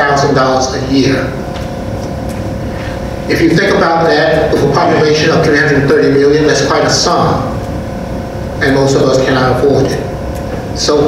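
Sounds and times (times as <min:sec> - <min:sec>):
man speaking: 0:00.0 - 0:01.4, 0:03.3 - 0:07.6, 0:08.6 - 0:10.1, 0:10.8 - 0:11.0
faint steady hum: 0:00.0 - 0:11.0.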